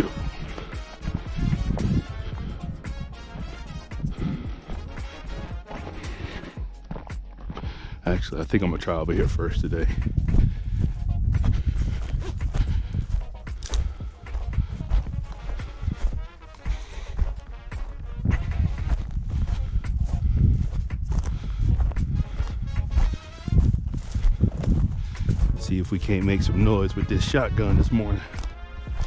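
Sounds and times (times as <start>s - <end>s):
footsteps through dry grass: 0.0s - 29.0s
wind rumbling on microphone: 0.0s - 29.0s.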